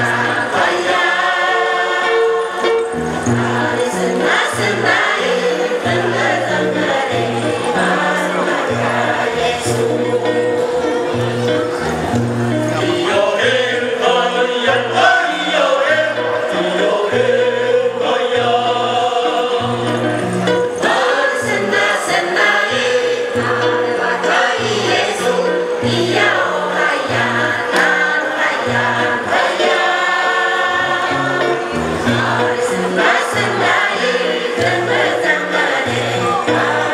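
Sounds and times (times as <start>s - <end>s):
women's choir chanting: 0.0s - 10.8s, 12.9s - 36.9s
electric guitar: 0.0s - 36.9s.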